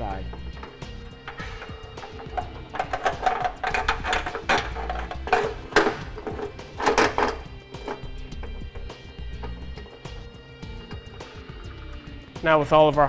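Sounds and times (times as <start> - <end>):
metal hardware clinking: 0.0 - 11.6
background music: 0.0 - 13.0
bolt knocking against steel frame: 0.3 - 10.3.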